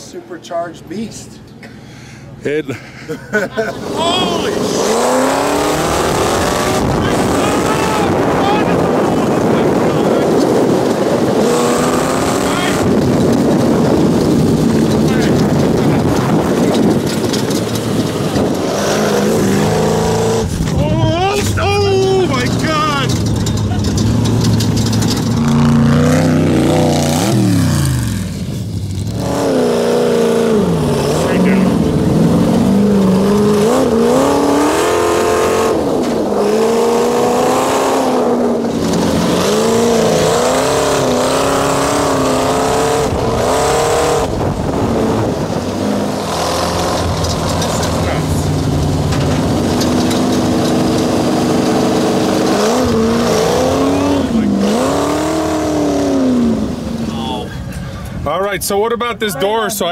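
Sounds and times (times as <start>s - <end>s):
sand car engine revving: 2.9s - 57.8s.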